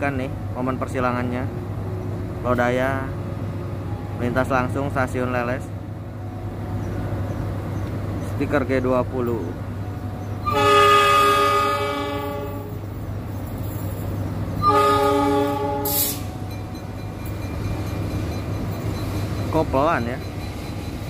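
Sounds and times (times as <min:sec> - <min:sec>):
locomotive horn blasts: 0:10.4 - 0:12.8, 0:14.6 - 0:16.3.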